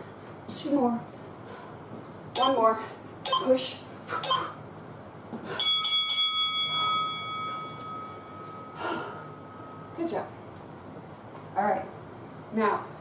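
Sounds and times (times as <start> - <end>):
bell chiming: 5.6 - 10.0.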